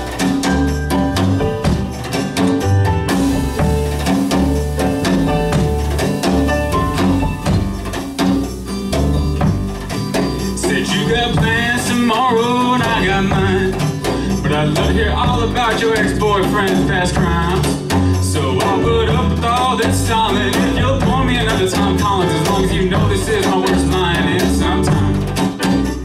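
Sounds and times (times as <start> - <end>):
acoustic band playing: 0.0 - 26.0
man singing: 10.6 - 25.3.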